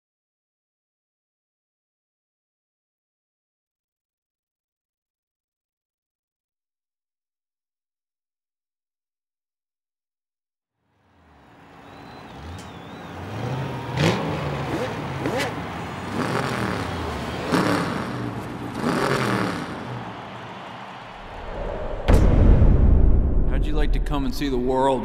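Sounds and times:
race cars revving and passing: 11.1 - 22.0
sudden deep boom: 21.1 - 25.0.

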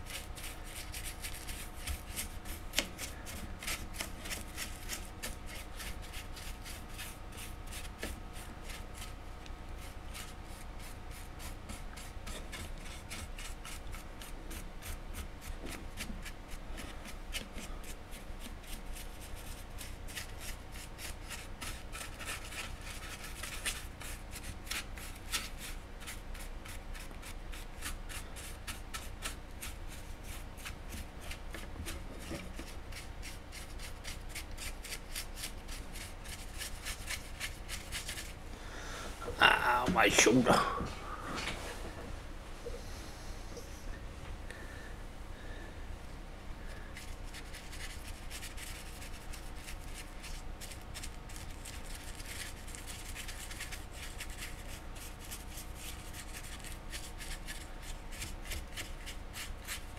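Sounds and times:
paintbrush dry brush strokes: 0.0 - 38.4, 46.6 - 59.9.

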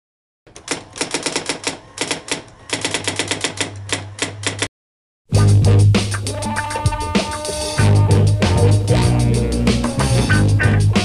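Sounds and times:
typewriter keys clacking: 0.6 - 4.7.

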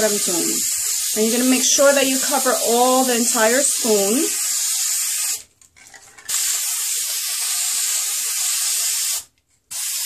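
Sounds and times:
spray paint can hissing: 0.0 - 5.5, 6.2 - 10.0.

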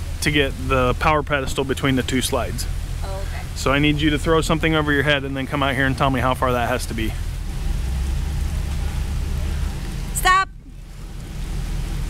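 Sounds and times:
continuous low rumble: 0.0 - 12.0
steady rain falling: 0.0 - 12.0.

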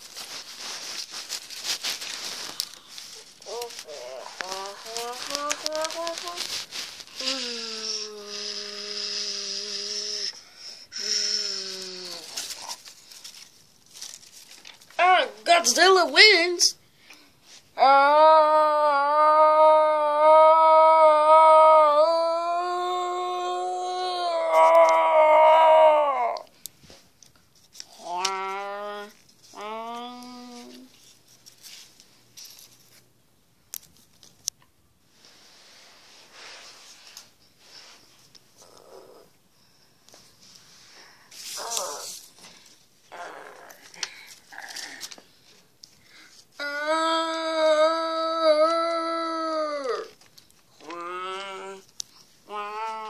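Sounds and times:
child imitating a monster roar: 7.2 - 10.4, 17.8 - 26.5, 28.0 - 30.9, 43.1 - 45.1, 46.6 - 50.2, 50.8 - 51.9, 52.5 - 53.0.

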